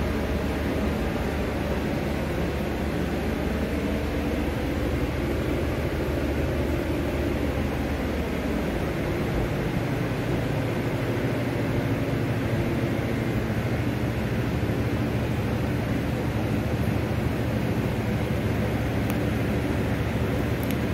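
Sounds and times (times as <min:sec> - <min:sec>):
machine hum: 0:00.0 - 0:20.9.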